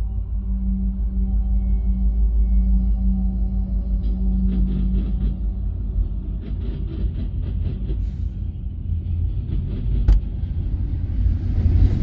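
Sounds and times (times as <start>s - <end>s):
freight train rumbling: 0.0s - 12.0s.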